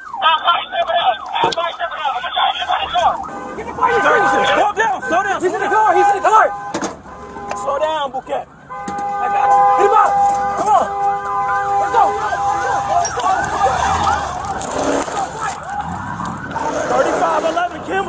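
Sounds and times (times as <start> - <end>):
siren yelping: 0.0 - 18.0.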